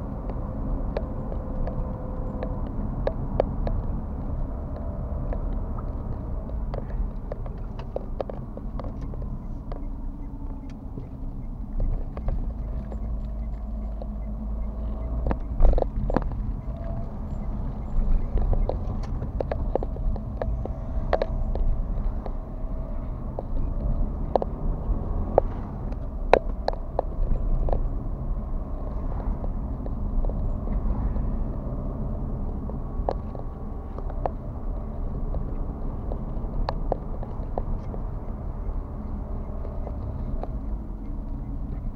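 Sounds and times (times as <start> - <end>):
car engine and road rumble: 0.0 - 41.9.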